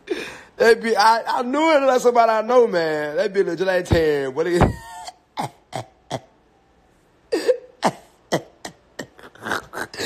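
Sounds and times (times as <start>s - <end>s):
person laughing breathily: 7.3s - 10.0s.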